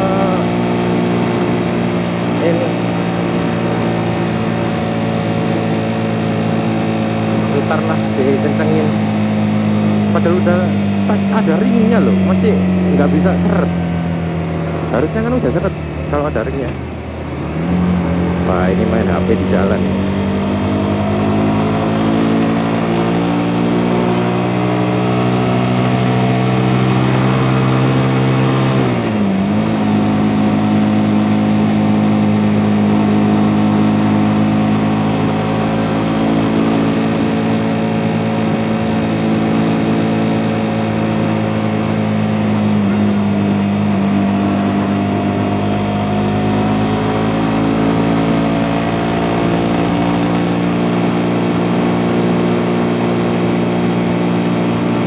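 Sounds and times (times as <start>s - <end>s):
motorcycle engine running: 0.0s - 55.0s.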